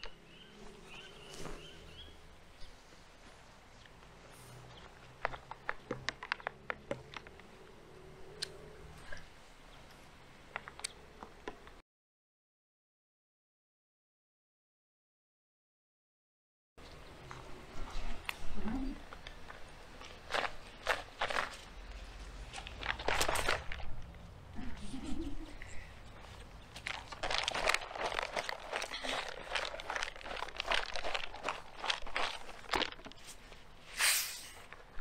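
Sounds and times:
plastic bottle crinkling: 0:04.9 - 0:07.5, 0:19.1 - 0:24.1, 0:26.2 - 0:35.0.

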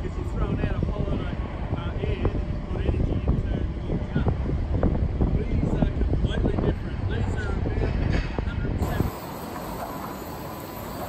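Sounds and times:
sawmill machinery noise: 0:08.8 - 0:11.0.

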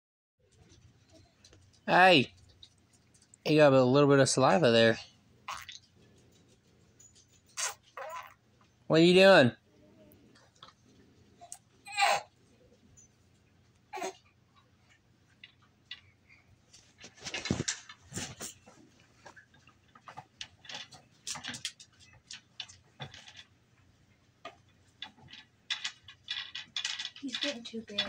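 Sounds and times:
wooden beads clicking: 0:24.4 - 0:28.0.

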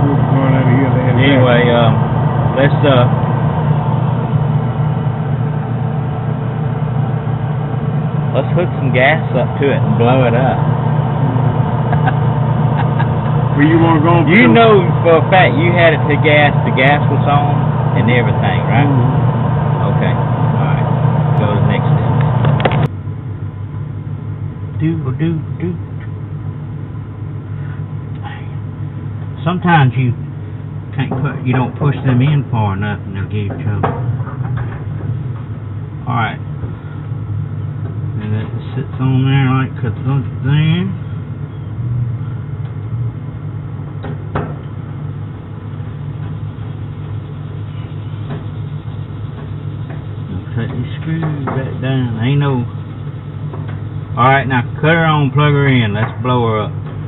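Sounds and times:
low mechanical hum: 0:00.0 - 0:57.0
steady low drone: 0:00.0 - 0:57.0.

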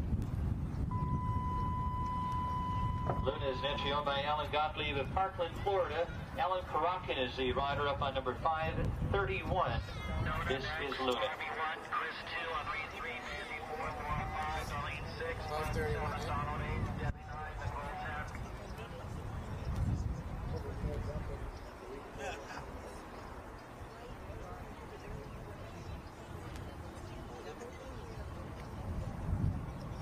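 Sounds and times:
steady high-pitched tone: 0:00.9 - 0:04.1
indistinct speech over loudspeakers: 0:03.0 - 0:18.4.

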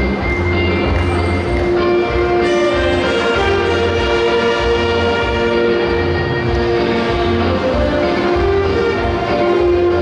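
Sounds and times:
saxophone ensemble chords: 0:00.0 - 0:10.0.

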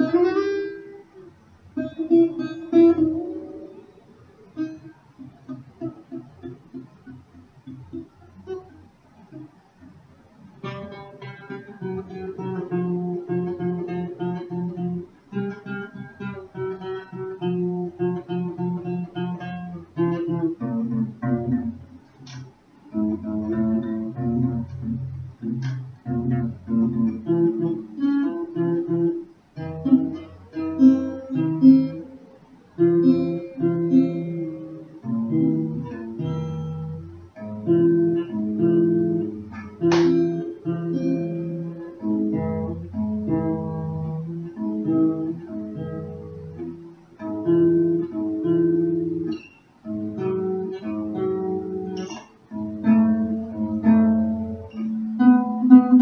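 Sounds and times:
acoustic guitar chords: 0:00.0 - 0:56.0.

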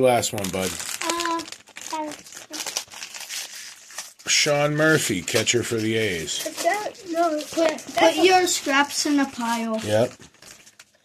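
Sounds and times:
foil wrapper crinkling: 0:00.0 - 0:11.0.

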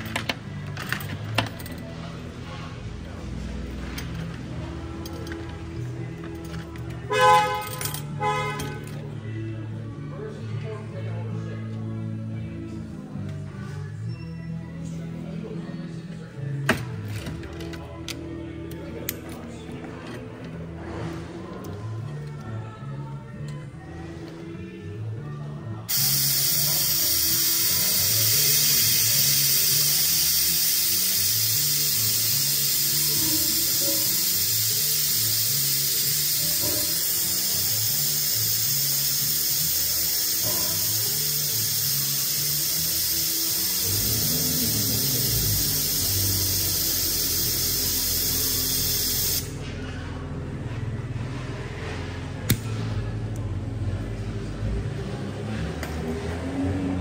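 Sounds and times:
background music: 0:00.0 - 0:57.0
compressed air hissing: 0:25.9 - 0:49.6.

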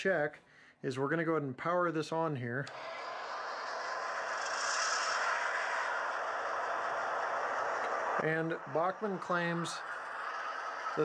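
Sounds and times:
diesel locomotive running sound: 0:02.7 - 0:11.0.

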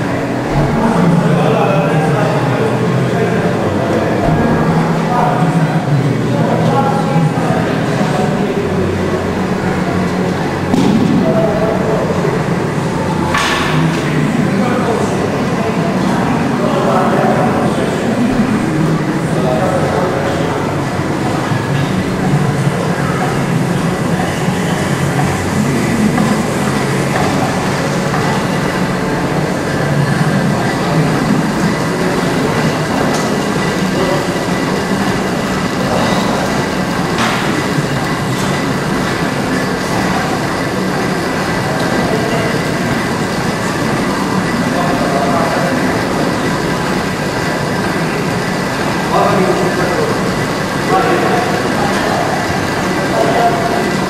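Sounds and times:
indistinct voices: 0:00.0 - 0:54.0
loud steady rumbling: 0:00.0 - 0:54.0.

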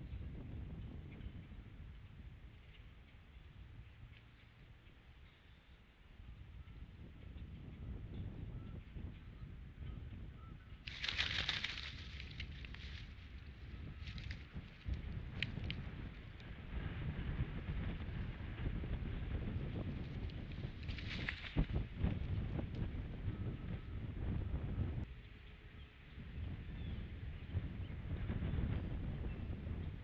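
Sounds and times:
low wind rumble: 0:00.0 - 0:30.0.

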